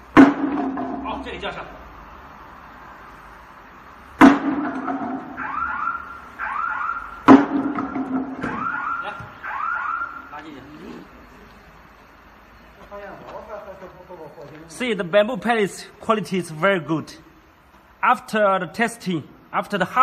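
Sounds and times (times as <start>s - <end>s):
sledgehammer striking wooden pallet: 0.2s - 1.2s, 4.2s - 5.5s, 7.2s - 8.8s
electronic chirp in pairs: 8.6s - 10.4s.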